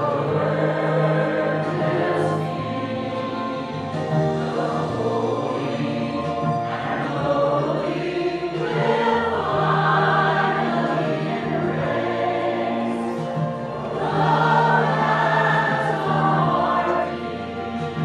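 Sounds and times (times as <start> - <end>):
church choir singing: 0.0 - 18.0
sustained accompaniment: 0.0 - 18.0.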